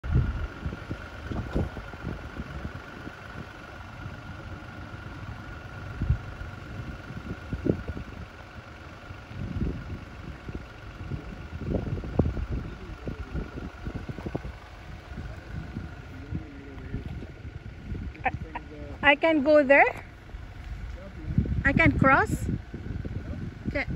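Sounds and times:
vehicles on a road: 0:00.0 - 0:23.9
wind buffeting microphone: 0:00.0 - 0:23.9.

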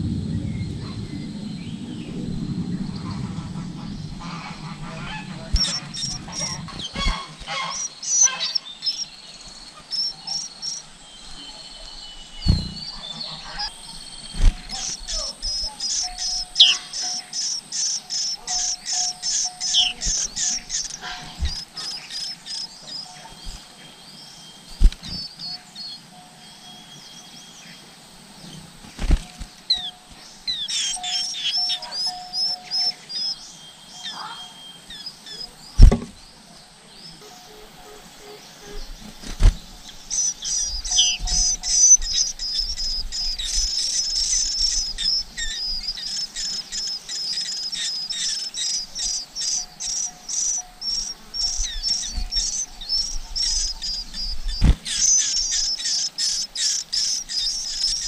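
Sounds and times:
nestlings cheeping rapidly: 0:05.5 - 0:35.9, 0:37.0 - 0:58.0
dull thumps: 0:12.4 - 0:13.0, 0:35.8 - 0:36.2.

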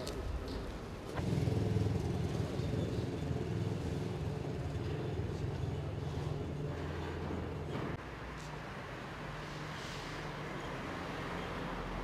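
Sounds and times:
crowded street noise: 0:00.0 - 0:12.0.

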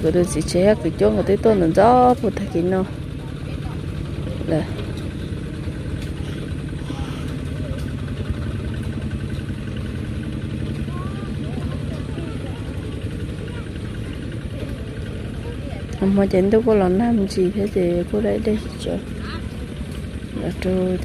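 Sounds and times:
faint distant voices: 0:00.0 - 0:17.6
small engine running: 0:00.0 - 0:21.0.

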